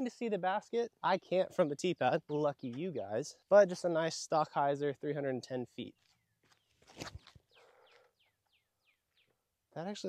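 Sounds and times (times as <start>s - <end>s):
bird chirping: 0.9s - 3.9s, 5.8s - 10.0s.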